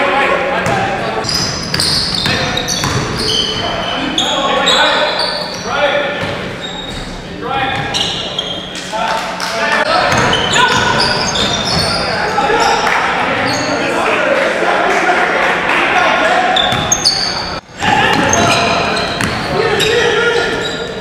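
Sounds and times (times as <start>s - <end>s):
players calling out: 0.0s - 21.0s
sneakers squeaking on court: 0.6s - 8.9s, 9.9s - 13.8s, 16.6s - 21.0s
basketball bouncing: 1.7s - 3.2s, 10.0s - 11.9s, 19.2s - 19.5s.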